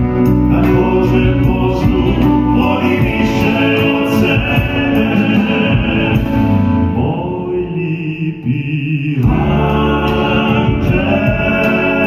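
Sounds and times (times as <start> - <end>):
band playing pop ballad: 0.0 - 12.0
male voices singing in harmony: 0.0 - 12.0.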